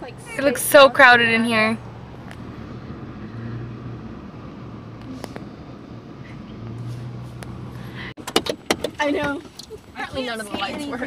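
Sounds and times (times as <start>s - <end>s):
car engine hum: 0.0s - 11.0s
road noise: 0.0s - 11.0s.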